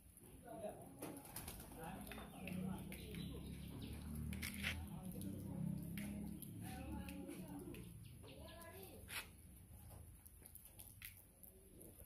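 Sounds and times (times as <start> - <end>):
distant voices: 1.1 - 9.0.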